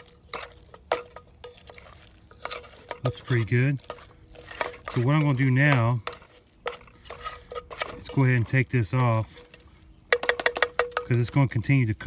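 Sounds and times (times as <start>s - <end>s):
metal utensil scraping mess tin: 0.0s - 11.7s.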